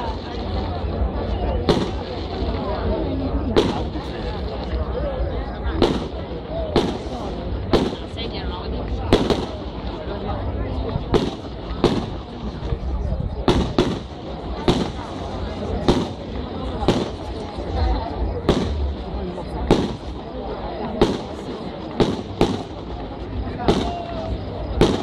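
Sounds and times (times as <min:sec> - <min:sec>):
fireworks bangs: 0:01.5 - 0:02.8, 0:03.4 - 0:04.8, 0:05.6 - 0:10.0, 0:11.0 - 0:12.7, 0:13.3 - 0:25.0.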